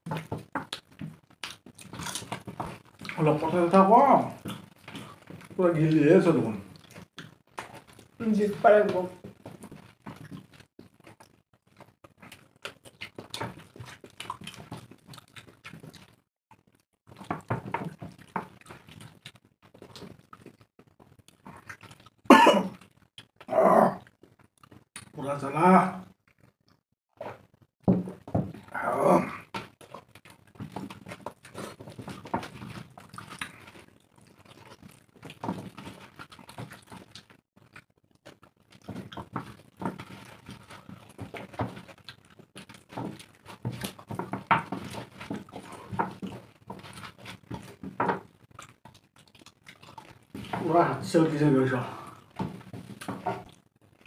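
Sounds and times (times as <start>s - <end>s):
wet eating clicks: 0.1s - 3.4s, 6.6s - 8.2s, 8.9s - 22.2s, 22.8s - 25.2s, 26.0s - 26.8s, 29.4s - 51.0s
person coughing: 22.3s - 22.8s.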